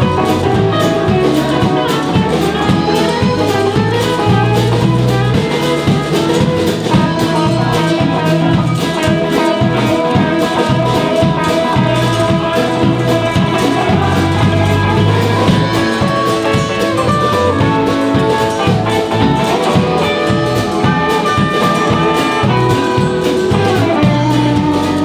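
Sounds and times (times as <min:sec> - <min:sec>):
acoustic guitar: 0:00.0 - 0:25.0
drum kit beat: 0:00.0 - 0:25.0
electric guitars: 0:00.0 - 0:25.0
live band playing: 0:00.0 - 0:25.0.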